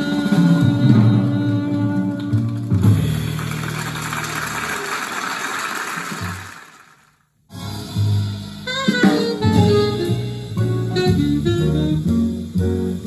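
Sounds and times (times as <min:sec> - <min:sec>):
live jazz music: 0:00.0 - 0:05.0, 0:07.5 - 0:13.0
audience applause: 0:03.1 - 0:07.2.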